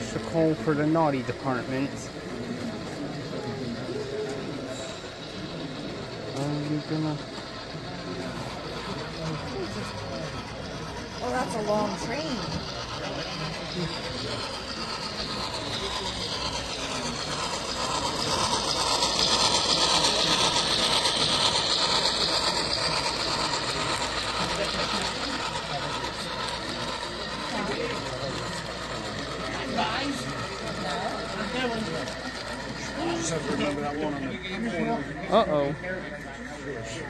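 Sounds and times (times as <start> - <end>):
model train rolling clatter: 0.0 - 37.0.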